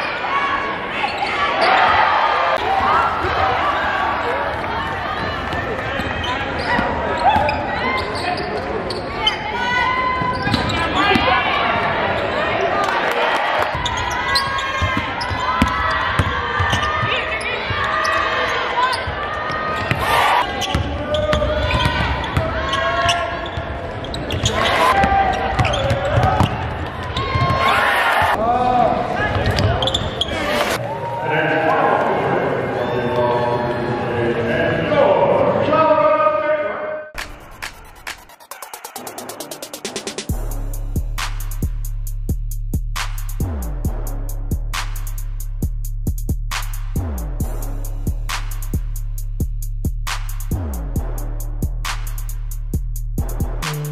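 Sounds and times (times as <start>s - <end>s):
voices calling out in gym: 0.0s - 37.2s
sneakers squeaking: 1.0s - 2.0s, 4.6s - 11.4s, 13.6s - 28.4s, 29.3s - 30.8s
basketball bouncing: 13.7s - 17.2s, 25.0s - 27.6s.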